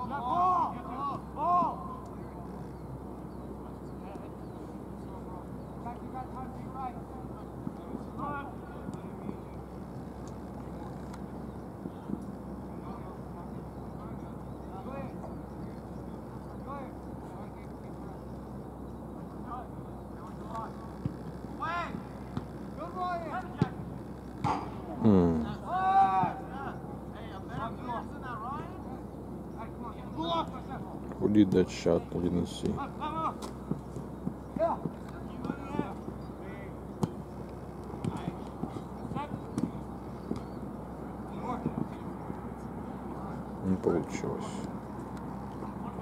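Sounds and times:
distant players shouting: 0:00.0 - 0:18.4, 0:19.2 - 0:46.0
steady low background hum: 0:00.0 - 0:46.0
ball kicked sharp knock: 0:24.4 - 0:24.8.

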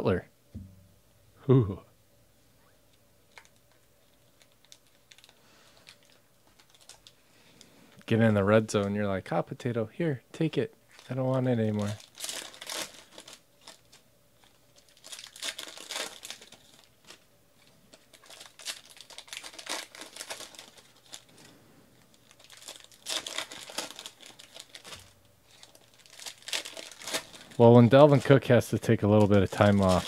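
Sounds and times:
crinkling: 0:02.6 - 0:08.1, 0:10.9 - 0:30.0.

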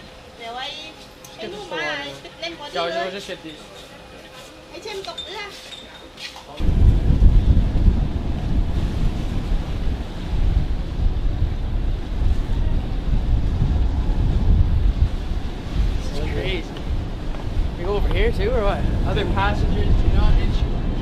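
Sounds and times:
wind buffeting microphone: 0:06.6 - 0:21.0.

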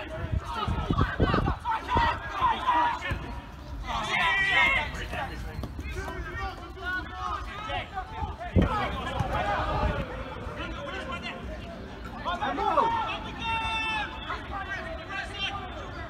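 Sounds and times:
voices shouting and calling: 0:00.0 - 0:16.0.

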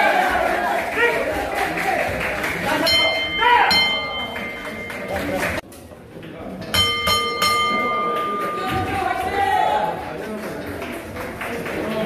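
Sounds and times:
boxing ring bell ringing: 0:02.8 - 0:05.2, 0:06.8 - 0:09.2.

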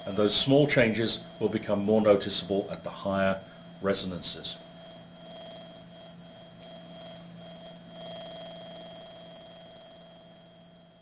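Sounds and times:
high-pitched resonating tone: 0:00.0 - 0:10.3
faint lower hum: 0:00.0 - 0:11.0.

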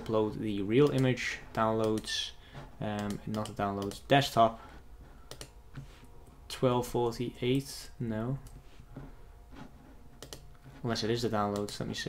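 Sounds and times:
low steady hum: 0:00.0 - 0:12.0
mouse and keyboard clicks: 0:05.3 - 0:05.5, 0:10.2 - 0:10.5.

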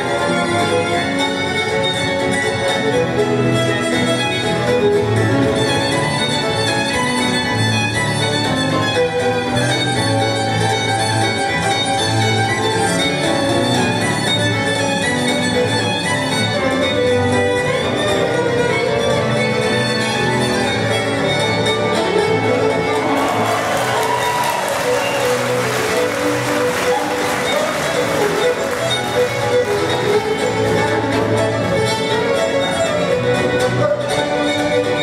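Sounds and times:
fiddle playing a tune: 0:00.0 - 0:35.0.

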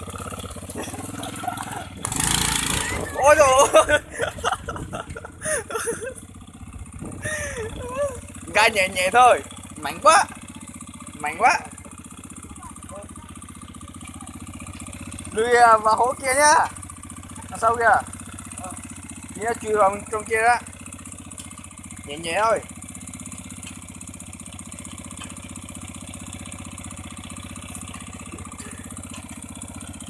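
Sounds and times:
motorcycle engine low putter: 0:00.0 - 0:30.0.

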